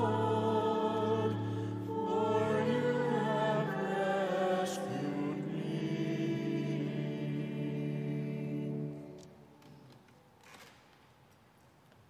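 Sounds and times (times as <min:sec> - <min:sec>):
person singing: 0:00.0 - 0:09.1.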